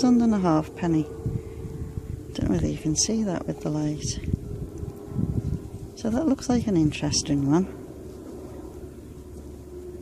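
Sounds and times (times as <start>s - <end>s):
faint outdoor background noise: 0.0s - 10.0s
thin steady hum: 0.0s - 10.0s.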